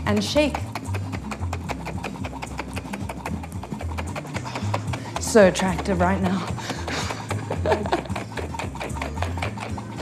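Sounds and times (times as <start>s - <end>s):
background music with bass line: 0.0s - 10.0s.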